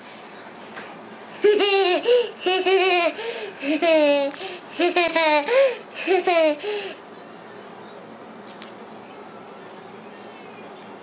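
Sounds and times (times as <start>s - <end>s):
low buzzing hum: 0.0s - 11.0s
small click: 8.5s - 8.8s.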